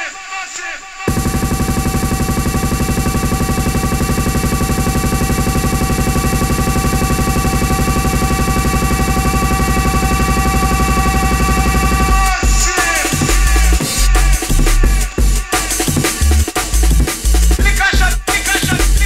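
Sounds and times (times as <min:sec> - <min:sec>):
buzzing electronic drone: 0:01.1 - 0:15.0
drum and bass beat: 0:01.1 - 0:19.0.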